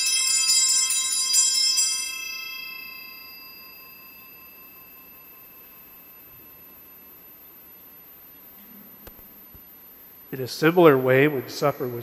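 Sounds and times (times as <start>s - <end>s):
altar bells ringing: 0.0s - 7.7s.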